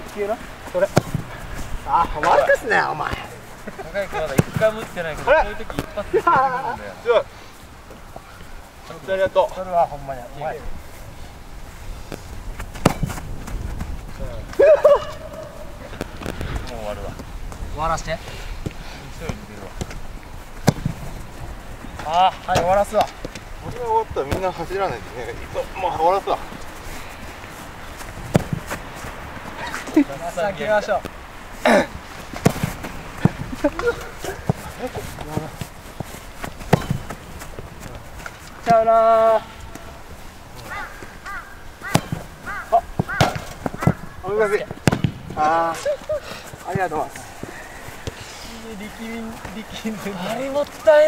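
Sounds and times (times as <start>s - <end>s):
soccer balls kicked and bouncing: 0.0s - 7.0s, 12.0s - 51.0s
faint footfalls on artificial turf: 0.0s - 51.0s.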